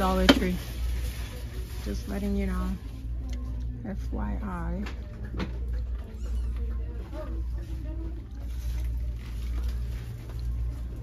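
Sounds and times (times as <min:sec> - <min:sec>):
low hum of store ambience: 0:00.0 - 0:11.0.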